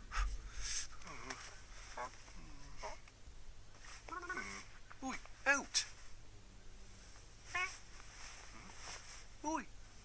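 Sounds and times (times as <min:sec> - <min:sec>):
person imitating cat meows: 0:04.1 - 0:04.6, 0:07.5 - 0:07.8.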